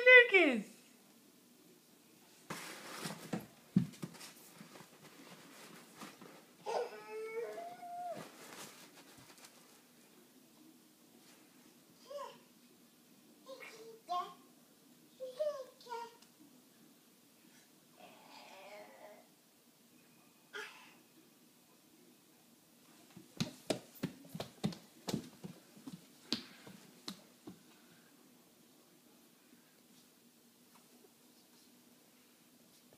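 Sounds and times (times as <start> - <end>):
hands slapping hardwood floor: 23.4 - 27.6.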